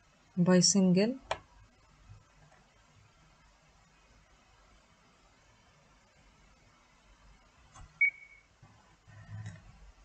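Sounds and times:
short high-pitched beep: 0:08.0 - 0:08.5.

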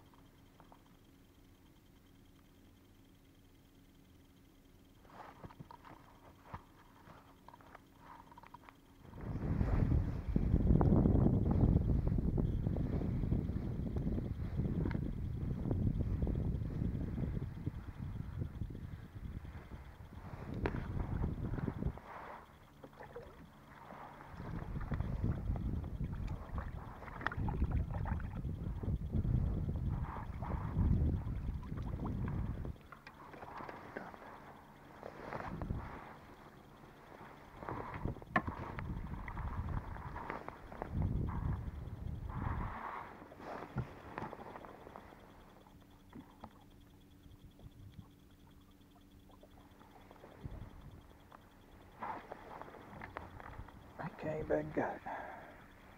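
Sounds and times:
wind buffeting microphone: 0:09.1 - 0:22.1, 0:24.3 - 0:32.8, 0:37.6 - 0:44.3.

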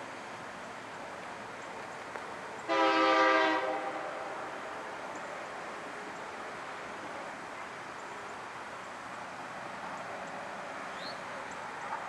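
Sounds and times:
faint background noise: 0:00.0 - 0:12.0
locomotive air horn blast: 0:02.7 - 0:04.4.

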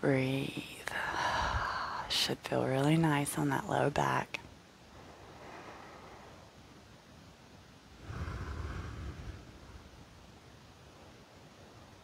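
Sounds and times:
breath blowing into microphone: 0:08.0 - 0:10.0.

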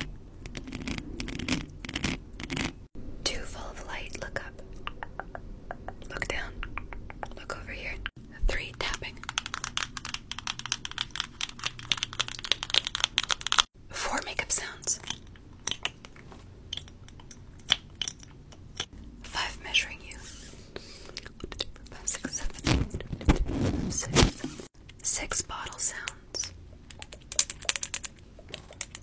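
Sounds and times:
rubbing and crinkling on microphone: 0:00.0 - 0:02.9, 0:19.2 - 0:20.7, 0:21.9 - 0:24.7.

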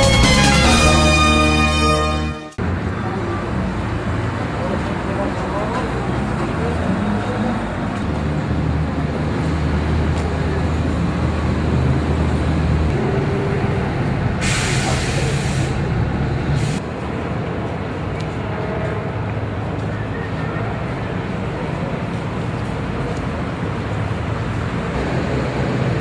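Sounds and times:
people talking: 0:02.9 - 0:08.2, 0:14.4 - 0:15.8
hissing burst: 0:14.4 - 0:15.9.

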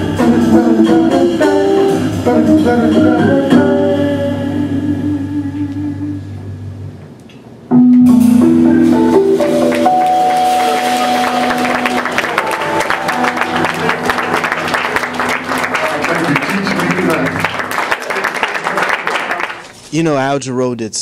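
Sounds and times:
organ and electric guitar chord: 0:07.8 - 0:17.7
audience applause: 0:09.4 - 0:19.8.

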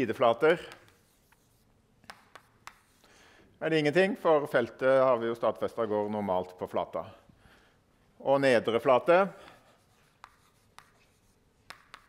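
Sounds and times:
chalk tapping on blackboard: 0:00.6 - 0:03.1, 0:09.0 - 0:12.0.

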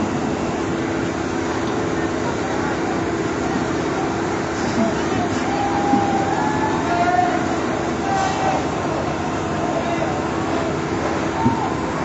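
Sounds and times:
mechanical drone with low hum: 0:00.0 - 0:12.0.

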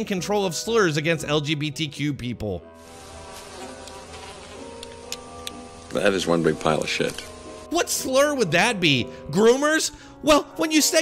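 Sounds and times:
flies buzzing: 0:02.8 - 0:07.7.

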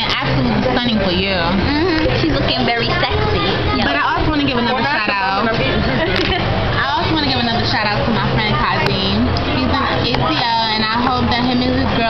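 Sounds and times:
steady low hum: 0:00.0 - 0:12.0
women talking: 0:00.0 - 0:12.0.

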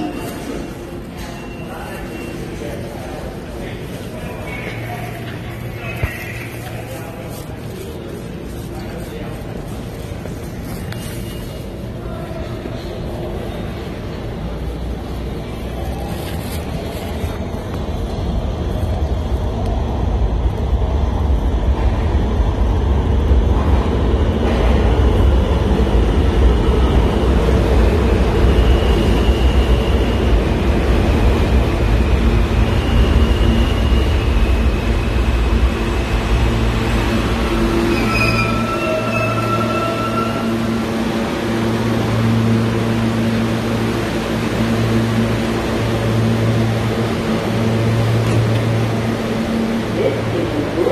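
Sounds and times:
subway train rumbling: 0:00.0 - 0:50.9
wheels squealing: 0:36.9 - 0:40.8.

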